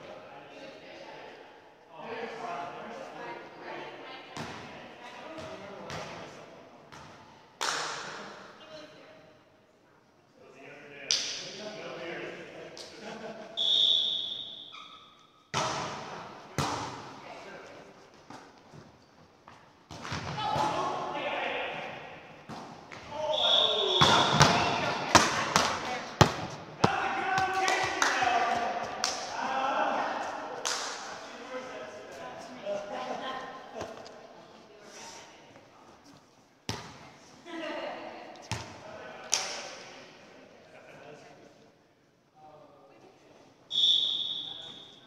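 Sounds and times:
volleyball being hit: 15.5 - 17.2, 23.9 - 29.3
players calling out: 22.9 - 31.0.

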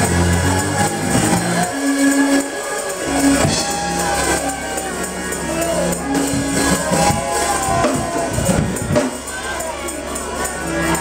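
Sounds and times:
church worship band music: 0.0 - 11.0.

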